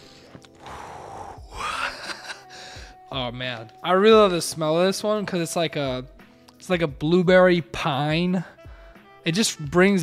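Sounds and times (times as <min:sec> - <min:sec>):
man sighing: 0:00.7 - 0:03.0.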